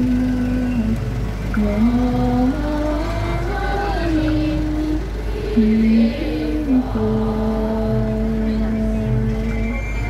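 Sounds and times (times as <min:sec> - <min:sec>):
low engine rumble: 0:00.0 - 0:10.0
voices singing slow melody: 0:00.0 - 0:10.0.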